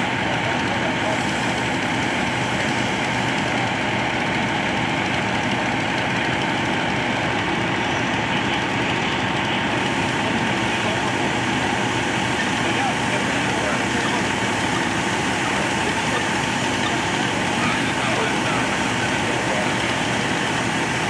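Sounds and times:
engine running steadily: 0.0 - 21.0
voices: 0.0 - 21.0.

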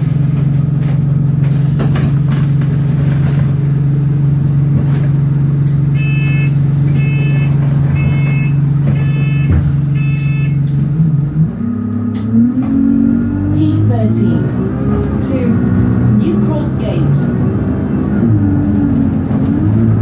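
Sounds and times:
bus engine droning: 0.0 - 20.0
short electronic beeps: 6.0 - 10.6.

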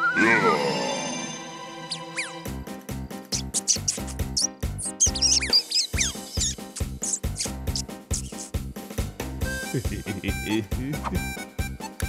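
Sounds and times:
fast rhythmic cartoon music: 1.8 - 12.0
squeaky cartoon mouse voices: 1.9 - 2.4, 3.3 - 8.5.

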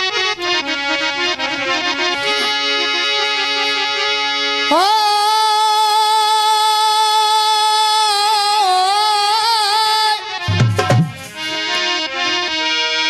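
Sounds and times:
harmonium playing chords: 0.0 - 13.0
person singing a long held note: 4.7 - 10.2.

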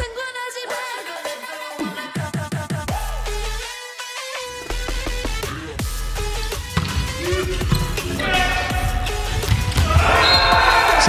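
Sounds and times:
background music with steady beat: 0.0 - 11.0
ball hitting court: 6.5 - 11.0
volleyball slaps: 9.3 - 11.0.

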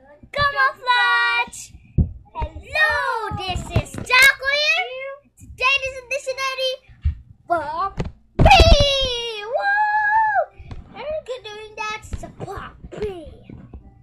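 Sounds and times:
boy singing and shouting: 7.6 - 11.2.

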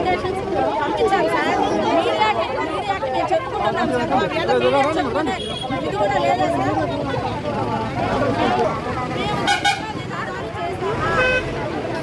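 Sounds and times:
crowd arguing: 0.0 - 12.0.

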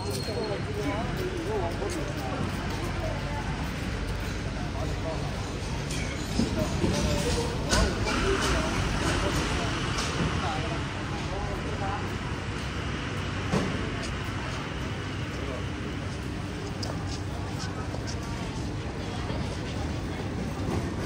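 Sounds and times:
passers-by talking: 0.0 - 21.0
road traffic rumble: 0.0 - 21.0.

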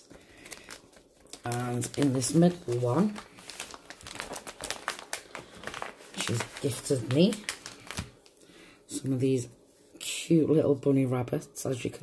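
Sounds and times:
plastic sleeve crinkling: 0.0 - 8.4.

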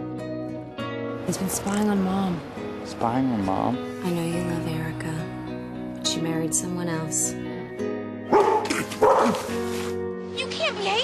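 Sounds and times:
background music: 0.0 - 11.0
dog barking: 8.3 - 9.7.

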